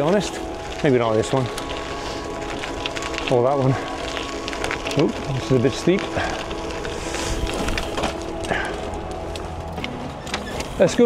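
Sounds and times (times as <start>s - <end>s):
bike clicks and rattles: 0.0s - 11.0s
faint steady tones: 0.0s - 11.0s.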